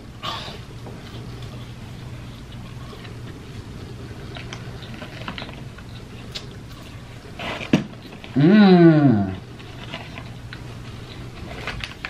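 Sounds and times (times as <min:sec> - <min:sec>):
chewing crunchy food: 0:00.6 - 0:08.4, 0:09.3 - 0:12.0.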